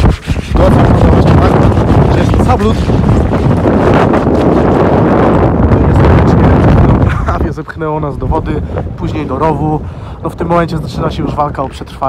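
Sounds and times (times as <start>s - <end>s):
gale wind on microphone: 0.0s - 12.0s.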